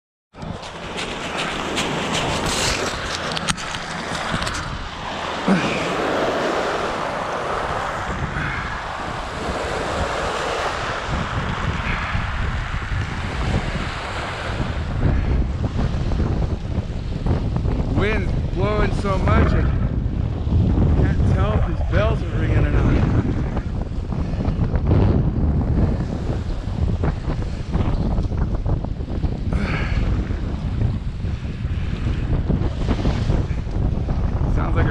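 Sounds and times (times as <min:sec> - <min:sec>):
wind buffeting microphone: 0:00.3 - 0:34.9
waves lapping on gravel: 0:00.5 - 0:15.2.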